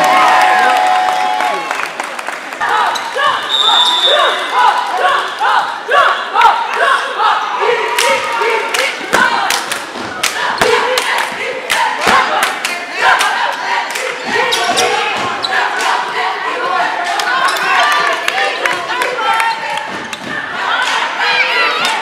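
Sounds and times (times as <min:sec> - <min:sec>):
crowd voices and shouts: 0:00.0 - 0:22.0.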